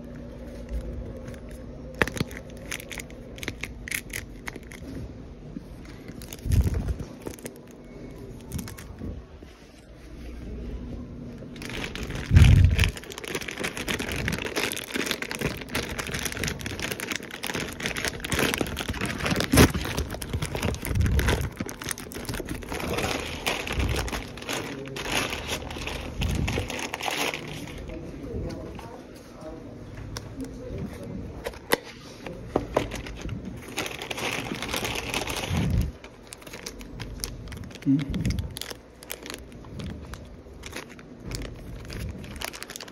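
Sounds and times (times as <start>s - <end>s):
paper wrapping crinkling and tearing: 0.0s - 5.0s, 5.8s - 9.5s, 11.4s - 28.1s, 31.4s - 42.9s.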